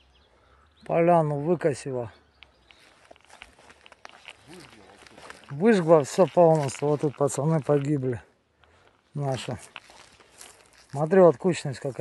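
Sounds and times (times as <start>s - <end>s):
footsteps on dry ground and debris: 2.0s - 12.0s
light irregular clicks: 2.3s - 8.0s.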